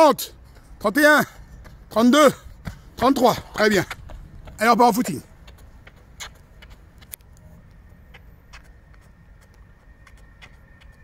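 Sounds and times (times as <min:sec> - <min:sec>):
footsteps jogging on running track: 0:00.0 - 0:11.0
low steady rumble: 0:05.2 - 0:11.0.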